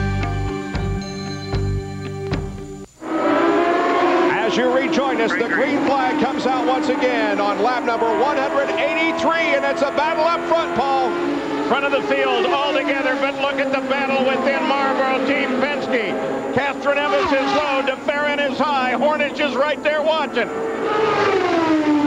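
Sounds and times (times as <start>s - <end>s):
racing car engines passing: 3.0s - 19.4s, 20.2s - 22.0s
commercial music: 4.8s - 5.9s.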